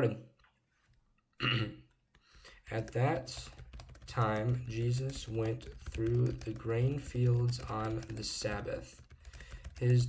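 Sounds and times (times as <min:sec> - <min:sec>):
man clearing throat: 0:01.4 - 0:01.8.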